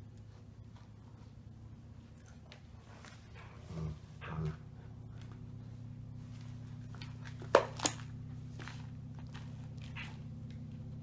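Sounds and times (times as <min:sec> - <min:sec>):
pups chewing and scuffling: 0:00.0 - 0:11.0
steady low hum: 0:00.0 - 0:11.0.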